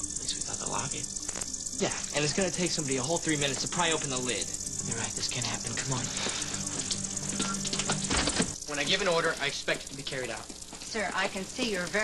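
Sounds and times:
low steady hum: 0.0 - 12.0
tape hiss and crackle: 0.0 - 12.0.

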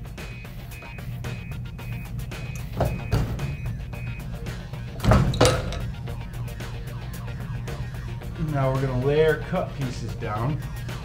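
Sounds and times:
background music: 0.0 - 11.0
heat press thud: 2.6 - 3.6, 4.9 - 6.0.

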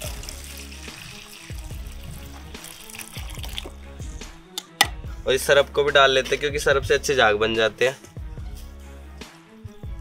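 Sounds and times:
water trickling into bucket: 0.0 - 3.8
background music with bass beat: 0.0 - 10.0.

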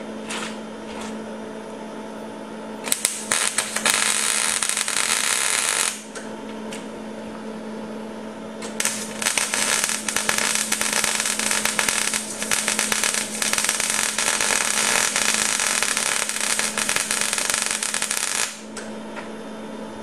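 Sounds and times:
steady hum: 0.0 - 20.0
arc welding crackle: 2.8 - 6.2, 8.6 - 18.9.

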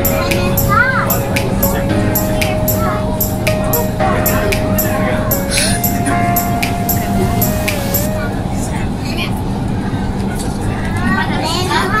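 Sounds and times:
metro train rumbling: 0.0 - 12.0
child's voice: 0.2 - 1.3.

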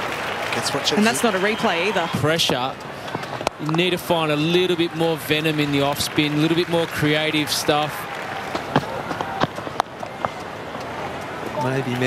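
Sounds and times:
background crowd murmur: 0.0 - 12.0.

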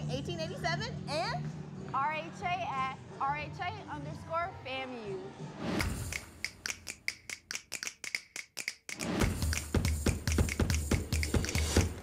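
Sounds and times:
snap-like clicks beat: 5.8 - 12.0.

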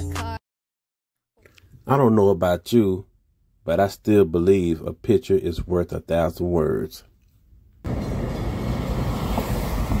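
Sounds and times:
car passing close by: 7.9 - 10.0.

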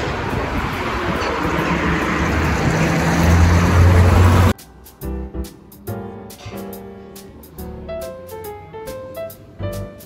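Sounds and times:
vehicle engine hum: 0.0 - 4.6
city street traffic: 0.0 - 10.0.

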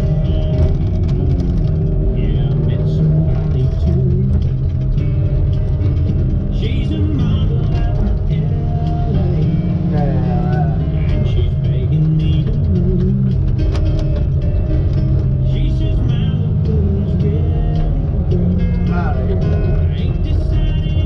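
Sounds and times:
man singing: 0.0 - 4.7, 6.4 - 13.6, 14.4 - 21.0
country band playing: 0.0 - 21.0.

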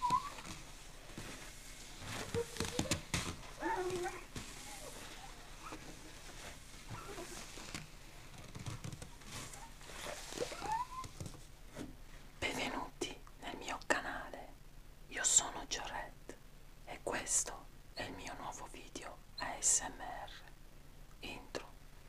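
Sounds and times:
soft rubbing and handling: 0.0 - 12.3
man whispering: 12.4 - 16.3, 16.9 - 20.5, 21.2 - 21.8.

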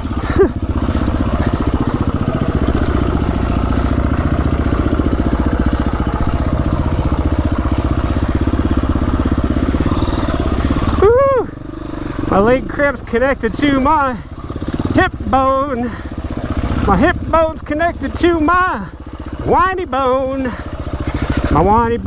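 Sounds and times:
dirt bike engine running: 0.0 - 22.0.

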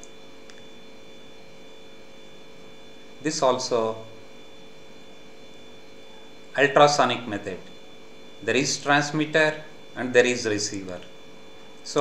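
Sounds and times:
electrical hum with hiss: 0.0 - 12.0.

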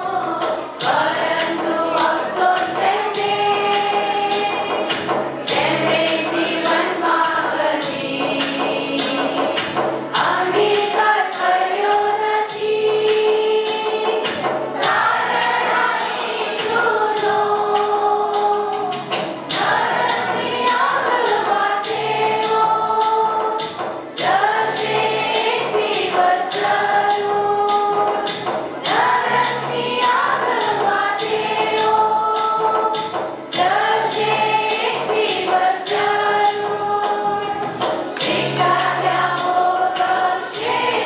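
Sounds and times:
group of voices singing: 0.0 - 41.0
instrumental backing with steady beat: 0.0 - 41.0.

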